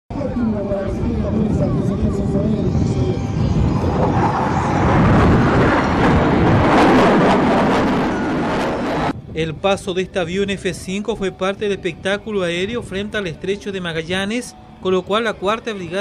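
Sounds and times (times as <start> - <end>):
jet roaring past: 0.6 - 9.2.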